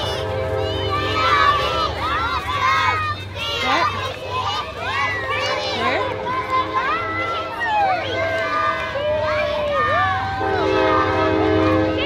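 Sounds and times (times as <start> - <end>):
long horn blast: 0.0 - 2.4, 10.2 - 12.0
low street rumble: 0.0 - 12.0
voices: 0.0 - 12.0.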